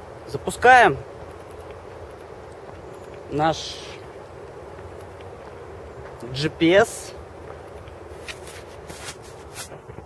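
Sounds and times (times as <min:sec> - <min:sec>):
handling rustling: 0:07.2 - 0:10.0
device scuffs and clicks: 0:08.2 - 0:10.0.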